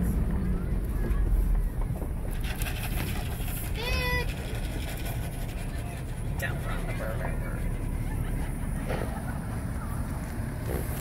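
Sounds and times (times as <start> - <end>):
truck rumbling on gravel: 0.0 - 11.0.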